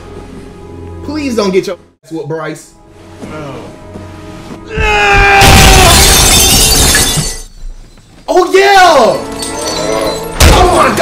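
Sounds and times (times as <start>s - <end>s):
glass shattering: 5.4s - 8.2s, 9.1s - 10.9s.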